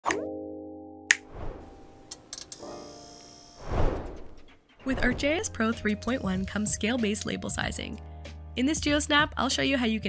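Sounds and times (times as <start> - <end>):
whoosh: 1.3 - 1.9, 3.6 - 5.5.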